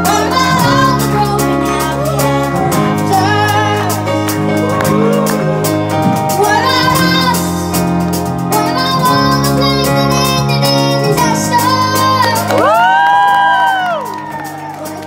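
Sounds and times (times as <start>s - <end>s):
woman singing: 0.0s - 7.7s, 8.5s - 14.0s
boy singing: 0.0s - 7.8s, 8.5s - 12.6s
band accompaniment: 0.0s - 15.0s.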